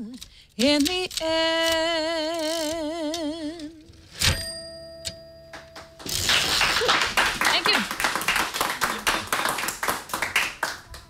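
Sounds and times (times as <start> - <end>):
typewriter bell ringing: 4.2 - 6.3.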